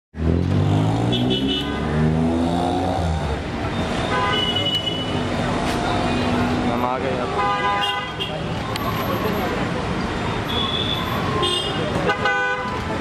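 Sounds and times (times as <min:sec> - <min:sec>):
voices: 0:02.4 - 0:12.2
car horns tooting: 0:03.8 - 0:05.3, 0:07.3 - 0:08.5, 0:10.4 - 0:12.9.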